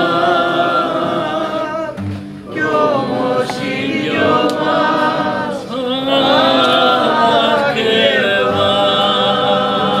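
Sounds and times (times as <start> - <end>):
voices singing along: 0.0 - 10.0.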